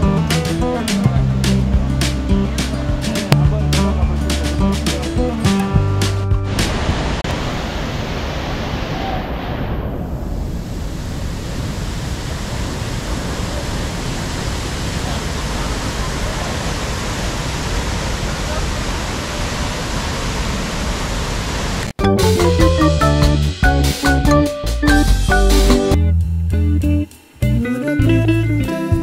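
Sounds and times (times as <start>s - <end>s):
background music: 0.0s - 6.7s, 22.0s - 29.0s
waterfall rushing into pool: 6.5s - 21.9s.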